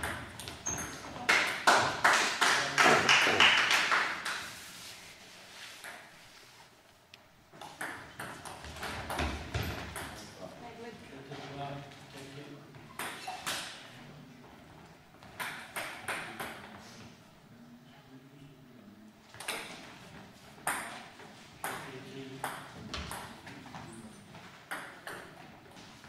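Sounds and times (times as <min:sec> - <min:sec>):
table tennis ball knocking: 0:07.6 - 0:10.2, 0:24.7 - 0:25.4.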